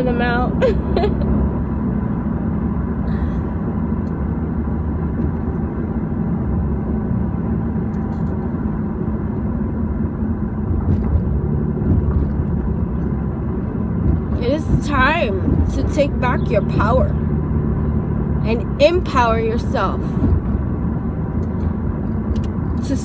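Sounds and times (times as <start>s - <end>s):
car engine rumble: 0.0s - 23.0s
tyres on road: 0.0s - 23.0s.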